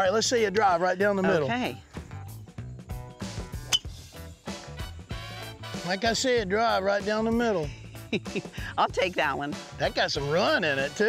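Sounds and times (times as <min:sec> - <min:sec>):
background music with steady beat: 0:00.0 - 0:11.0
golf club striking ball: 0:03.7 - 0:04.0.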